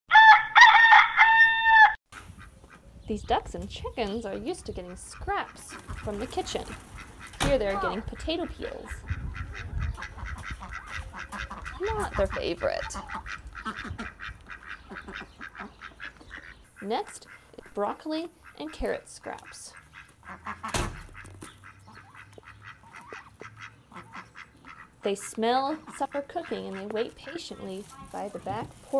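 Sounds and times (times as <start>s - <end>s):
rooster crowing: 0.1s - 2.0s
ducks quacking: 2.1s - 28.9s
loud thump: 20.7s - 21.2s.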